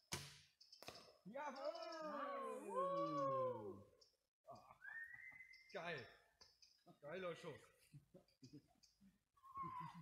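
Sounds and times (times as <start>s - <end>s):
voices in sliding wordless tones: 1.3s - 10.0s.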